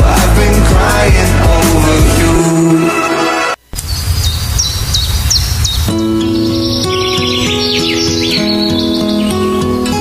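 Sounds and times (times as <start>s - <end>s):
birds chirping: 3.8s - 10.0s.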